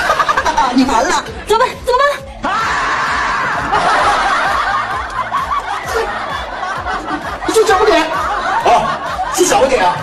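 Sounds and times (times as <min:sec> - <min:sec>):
several people laughing: 0:00.0 - 0:01.3, 0:03.2 - 0:10.0.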